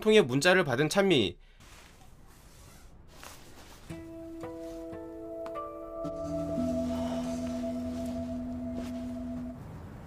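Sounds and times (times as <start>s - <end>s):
ambient drone of held tones: 5.3s - 9.6s.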